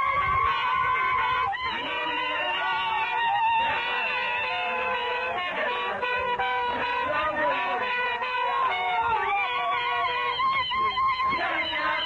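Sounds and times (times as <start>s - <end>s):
voices singing together: 0.0s - 12.0s.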